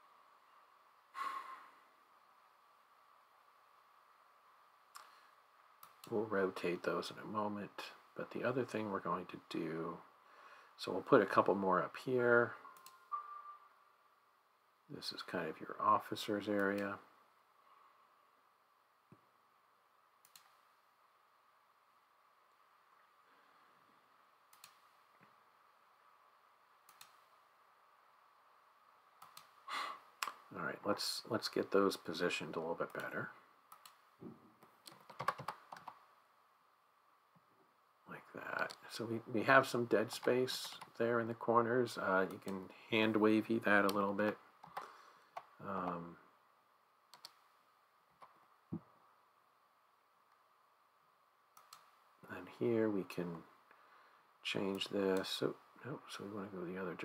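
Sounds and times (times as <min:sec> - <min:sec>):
faint steady hum: 0:00.0 - 0:57.0
computer mouse clicks: 0:05.8 - 0:06.1, 0:12.7 - 0:13.4, 0:20.2 - 0:20.7, 0:24.5 - 0:25.0, 0:26.8 - 0:27.3, 0:29.2 - 0:29.6, 0:33.7 - 0:34.0, 0:34.6 - 0:36.0, 0:47.1 - 0:47.5, 0:51.5 - 0:52.0
faint computer mouse clicks: 0:20.2 - 0:20.6, 0:24.5 - 0:25.3, 0:26.9 - 0:27.3, 0:29.2 - 0:29.6, 0:33.7 - 0:34.0, 0:47.1 - 0:47.4, 0:51.6 - 0:51.9.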